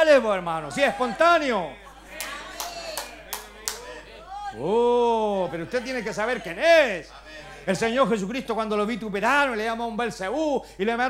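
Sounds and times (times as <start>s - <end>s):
sharp hand claps: 2.2s - 3.9s.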